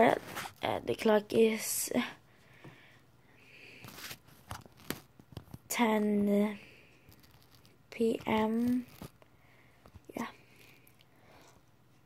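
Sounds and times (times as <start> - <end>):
soft rustle: 3.6 - 12.0.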